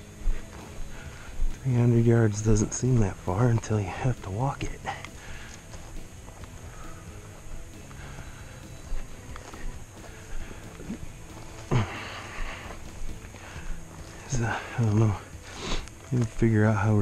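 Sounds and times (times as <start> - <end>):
footsteps crunching dry grass: 0.0 - 17.0
stems swishing against legs: 2.6 - 16.5.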